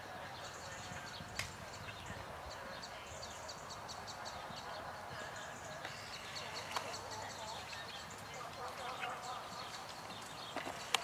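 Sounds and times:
indistinct background voices: 0:00.0 - 0:11.0.

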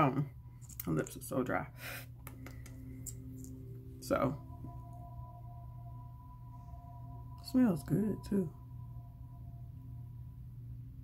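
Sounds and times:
low hum: 0:00.0 - 0:11.0
sustained high tones: 0:02.8 - 0:11.0.

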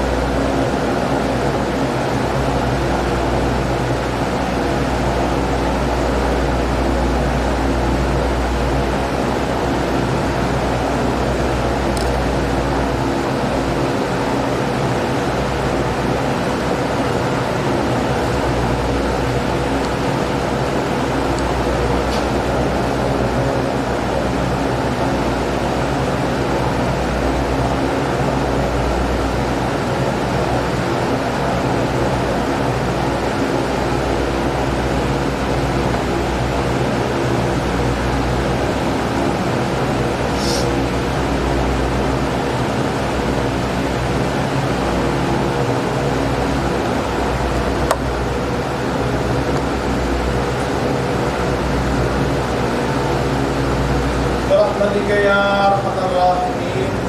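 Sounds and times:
steady mechanical hum with hiss: 0:00.0 - 0:57.0.

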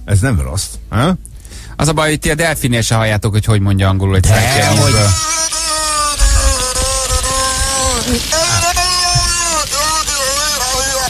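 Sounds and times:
wavering voice-like wailing tones: 0:04.2 - 0:11.0.

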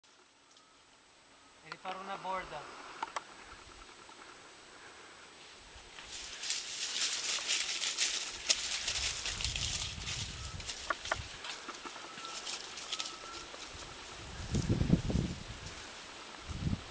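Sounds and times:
leaves and twigs crackling underfoot: 0:01.6 - 0:16.9.

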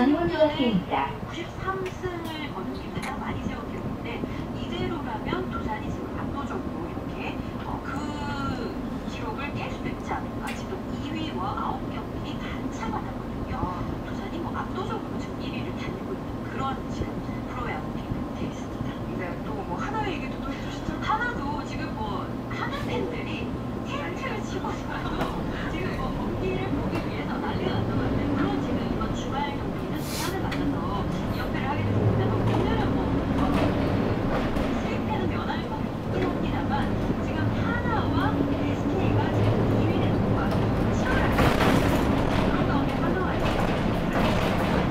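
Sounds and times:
bus engine idling: 0:00.0 - 0:44.9
voice from bus radio: 0:18.7 - 0:34.1.

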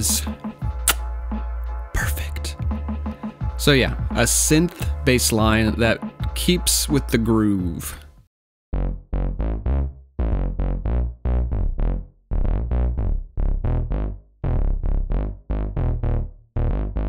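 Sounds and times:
synth bass riff: 0:08.7 - 0:17.0.

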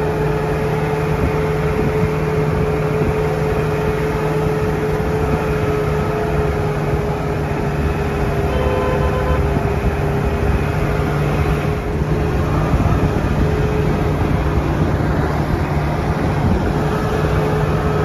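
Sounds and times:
road rumble: 0:00.0 - 0:18.0
vehicle engine running: 0:00.0 - 0:18.0.

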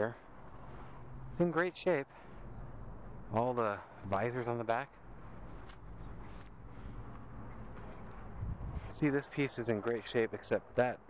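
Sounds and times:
low steady rumble: 0:00.2 - 0:09.7
footsteps through tall grass: 0:05.1 - 0:09.3.

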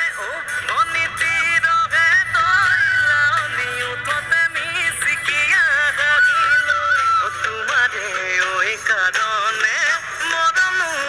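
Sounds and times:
folk song music: 0:00.0 - 0:11.0
person singing ornamented melody: 0:00.0 - 0:11.0.

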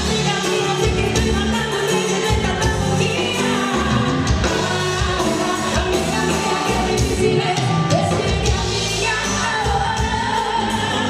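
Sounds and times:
band with steady beat: 0:00.0 - 0:11.0
woman singing into a microphone: 0:00.0 - 0:11.0.

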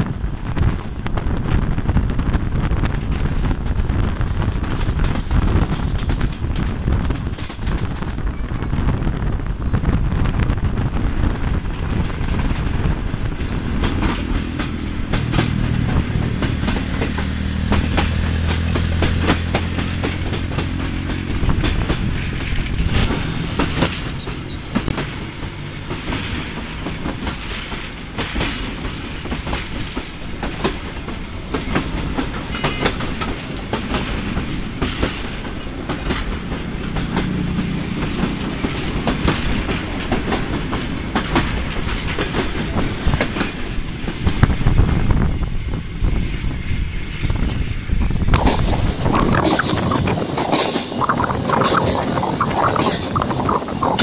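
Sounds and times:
train wheel and rail noise: 0:00.0 - 0:54.0
wheels clicking over rail joints: 0:02.9 - 0:09.0, 0:11.4 - 0:54.0.

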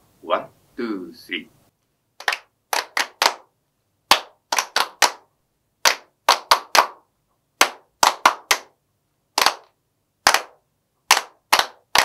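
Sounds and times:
people clapping a rhythm: 0:02.2 - 0:12.0.

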